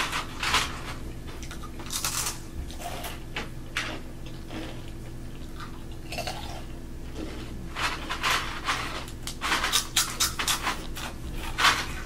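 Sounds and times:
crunching and chewing rice crisps: 0:00.0 - 0:12.0.

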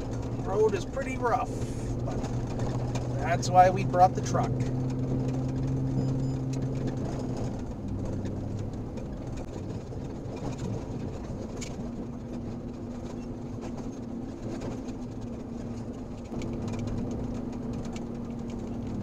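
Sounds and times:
low engine hum: 0:00.0 - 0:19.0
small clicks and rattles: 0:00.0 - 0:19.0.

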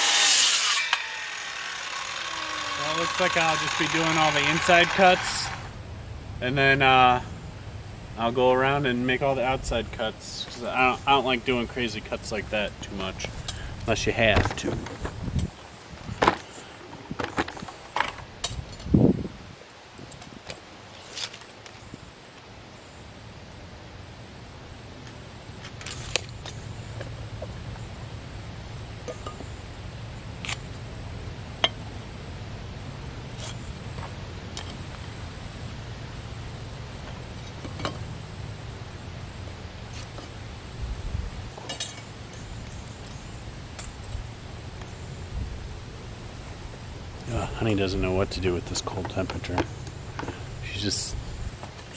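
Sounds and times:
outdoor background noise: 0:00.0 - 0:51.9
camera handling knocks and rustles: 0:16.1 - 0:18.2.

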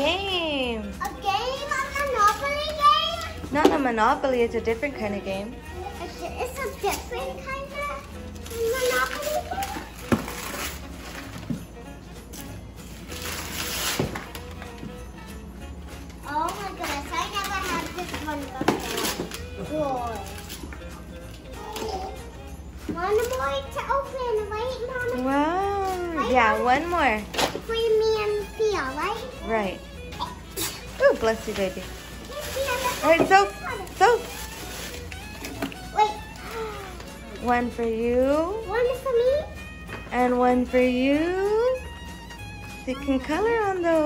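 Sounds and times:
wrapping paper tearing: 0:06.6 - 0:11.4, 0:12.3 - 0:14.8, 0:16.1 - 0:22.3, 0:30.3 - 0:37.4
young children babbling: 0:21.5 - 0:22.3.

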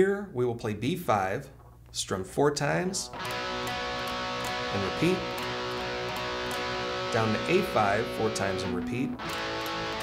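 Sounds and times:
electric guitar power chord: 0:03.1 - 0:10.0.

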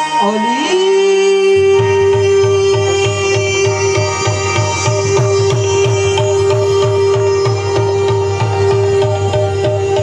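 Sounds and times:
harmonium melody: 0:00.0 - 0:10.0
quick hand-drum beat: 0:01.8 - 0:10.0.

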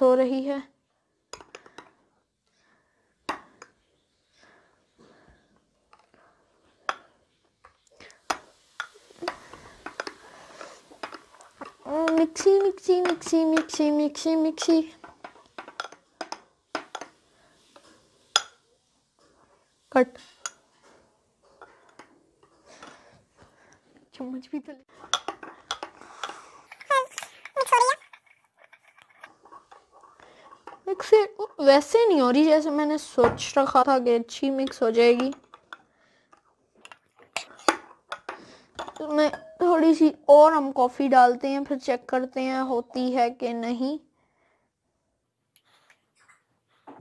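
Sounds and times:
spoon stirring in glass mug: 0:08.2 - 0:18.6, 0:21.5 - 0:23.0, 0:24.9 - 0:32.4, 0:34.6 - 0:39.7
spoon scraping glass: 0:25.0 - 0:31.8.

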